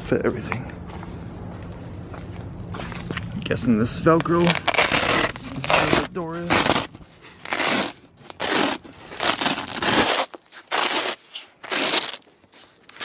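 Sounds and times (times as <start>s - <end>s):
velcro ripping apart: 4.2s - 13.0s.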